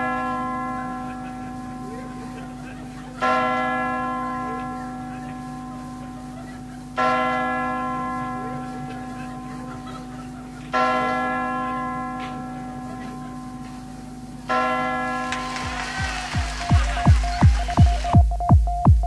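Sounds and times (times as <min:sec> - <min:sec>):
large bell ringing: 0:00.0 - 0:17.9.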